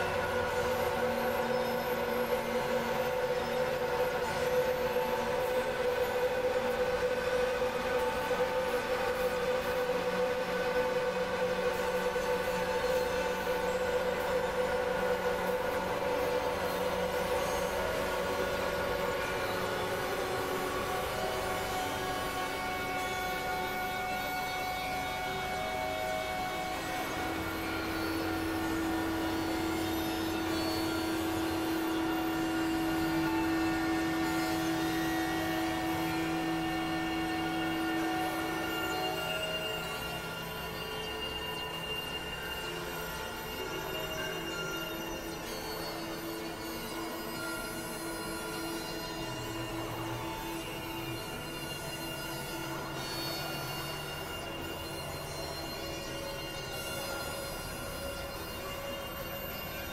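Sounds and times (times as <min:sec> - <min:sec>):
synthesizer drones: 0:00.0 - 0:59.9.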